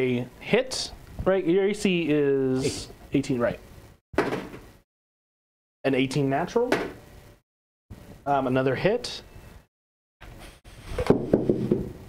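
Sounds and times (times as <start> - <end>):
sudden knock: 11.0 - 12.0.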